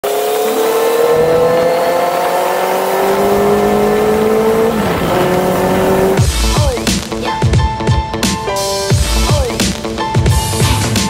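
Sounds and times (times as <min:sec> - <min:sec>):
motor scooter engine running: 0:00.0 - 0:06.9
wind rush: 0:01.0 - 0:06.4.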